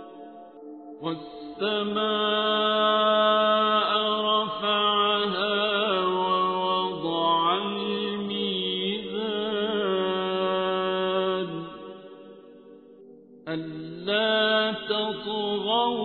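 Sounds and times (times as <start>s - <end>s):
person chanting melodic recitation: 0.0s - 12.2s, 13.4s - 16.0s.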